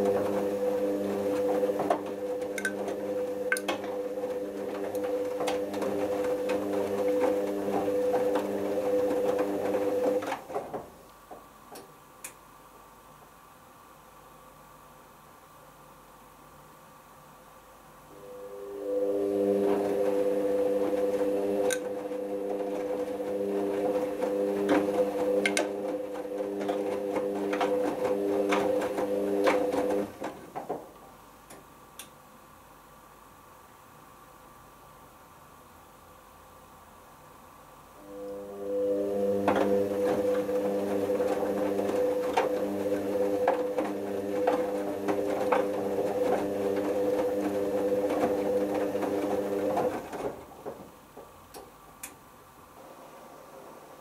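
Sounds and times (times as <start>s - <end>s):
washing machine motor humming: 0.0s - 11.8s, 18.1s - 31.5s, 38.0s - 54.0s.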